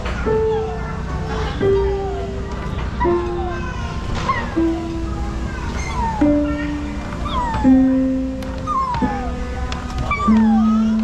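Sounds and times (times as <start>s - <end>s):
electronic piano stair notes: 0.0s - 11.0s.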